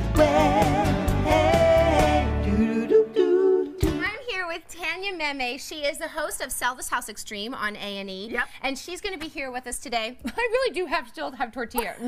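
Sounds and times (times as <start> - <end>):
woman talking: 4.0 - 12.0.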